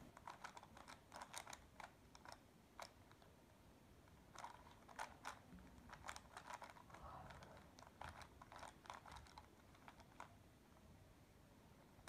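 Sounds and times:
puzzle cube rattling: 0.1 - 3.2, 4.3 - 10.3
puzzle cube layers clicking: 0.2 - 3.2, 4.3 - 10.3.

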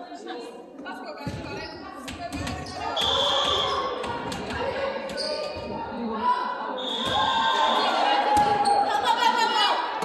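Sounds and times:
shoe squeaks on gym floor: 5.1 - 5.7
volleyball hits: 8.2 - 8.8.

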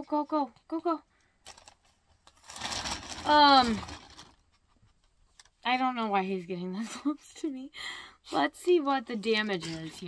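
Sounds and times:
plastic bag rustling and crinkling: 1.4 - 6.1, 8.8 - 10.0.

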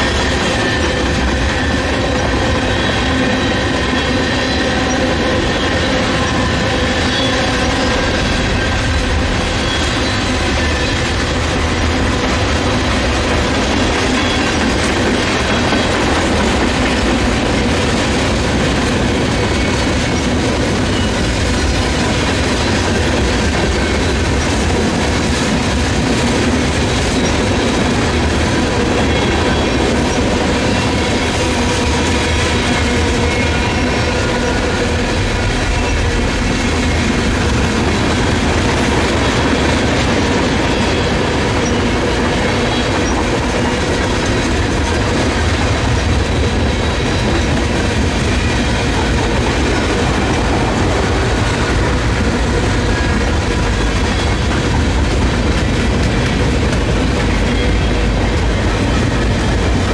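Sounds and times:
steel wheels rumbling on rail: 0.0 - 59.9.

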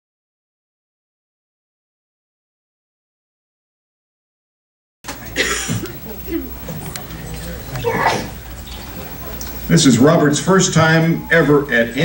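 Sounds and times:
low steady room hum: 5.1 - 12.0
person coughing: 5.4 - 6.4.

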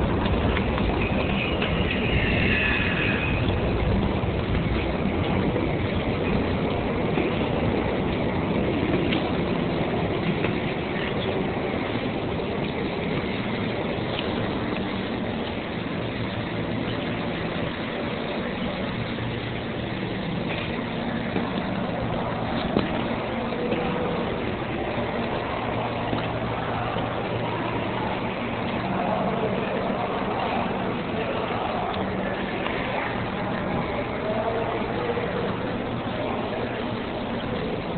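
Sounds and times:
rail noise: 0.0 - 37.9
subway train rumbling: 0.0 - 37.9.

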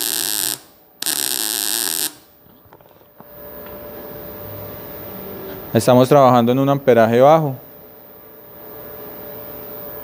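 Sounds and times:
machine hum with hiss: 0.0 - 2.3.

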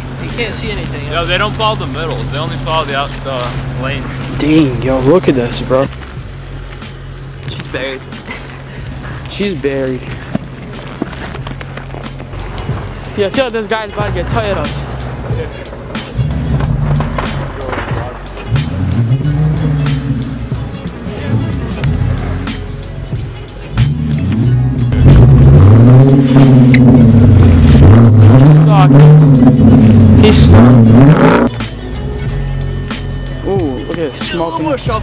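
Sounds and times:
car engine revving: 0.0 - 33.4.

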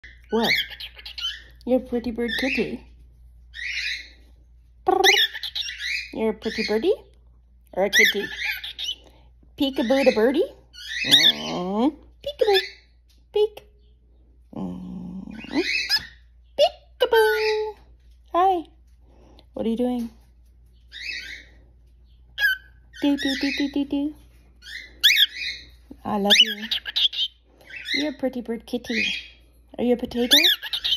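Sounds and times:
cockatiel squawking and chirping: 0.0 - 1.6, 3.5 - 4.2, 5.0 - 6.8, 7.9 - 9.0, 9.8 - 11.6, 15.4 - 16.3, 20.9 - 21.5, 22.3 - 23.6, 24.6 - 28.2, 30.2 - 30.9.

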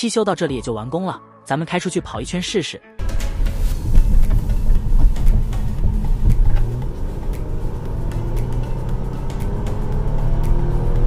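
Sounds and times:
car engine and road noise: 3.0 - 11.0.

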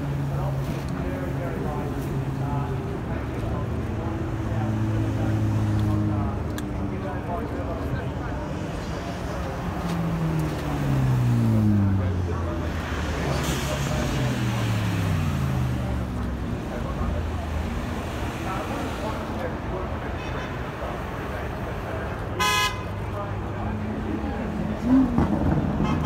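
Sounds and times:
sports car engines passing: 0.0 - 26.0
car horn toot: 22.4 - 23.0.

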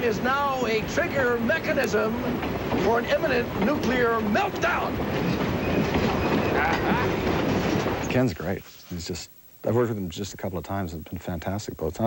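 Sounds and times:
train rumble and rattle: 0.0 - 8.1.

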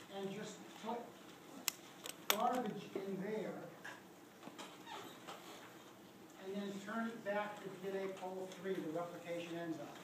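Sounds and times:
marker squeaking on whiteboard: 4.8 - 5.7.

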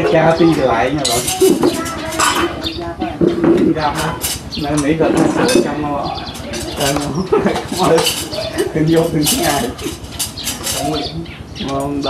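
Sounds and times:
metal spoon clinking bowls: 0.0 - 2.7, 3.5 - 11.1
people talking: 0.0 - 10.0, 10.6 - 12.0.

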